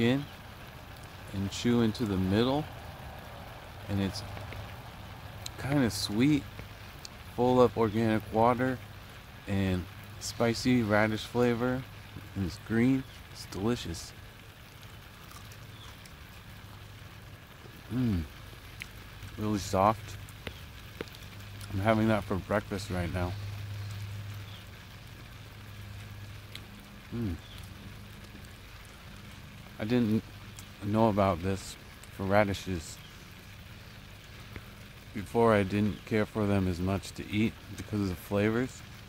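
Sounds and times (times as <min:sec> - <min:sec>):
low background rumble: 0:00.0 - 0:39.0
sprinkler spray hissing on plants: 0:00.0 - 0:39.0
crunching and chewing radish: 0:00.2 - 0:07.3, 0:11.2 - 0:39.0.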